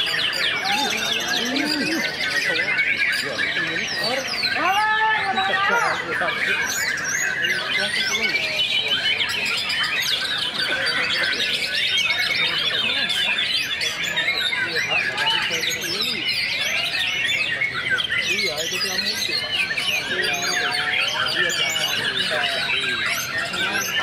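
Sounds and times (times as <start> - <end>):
birds singing: 0.0 - 24.0
fast rattling bird trill: 5.8 - 24.0.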